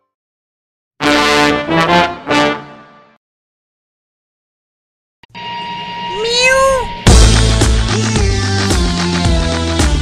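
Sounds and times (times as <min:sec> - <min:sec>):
cat meowing: 0:06.1 - 0:07.0
loud music with steady beat: 0:07.1 - 0:10.0.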